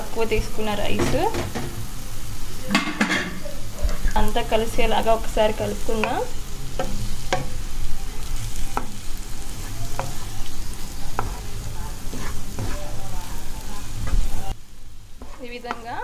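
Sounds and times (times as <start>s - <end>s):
frying sizzle: 0.0s - 16.0s
spatula mixing rice in a pan: 3.6s - 14.6s, 15.2s - 16.0s.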